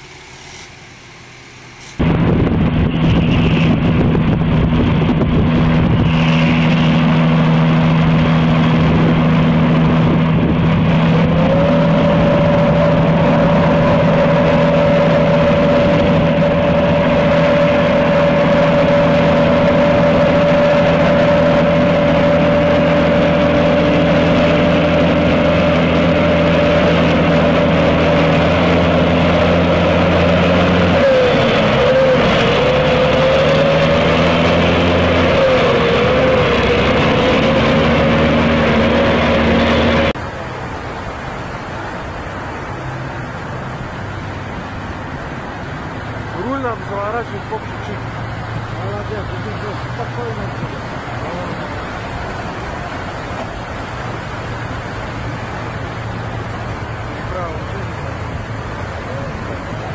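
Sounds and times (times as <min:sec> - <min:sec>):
rising whine: 0:00.0 - 0:59.9
rushing water: 0:00.0 - 0:59.9
truck engine running: 0:00.0 - 0:59.9.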